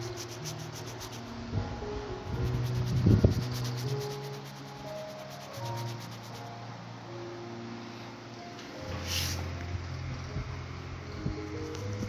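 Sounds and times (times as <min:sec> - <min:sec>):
ear tool scratching skin: 0:00.0 - 0:01.3, 0:02.4 - 0:06.5
soft background music: 0:00.0 - 0:12.0.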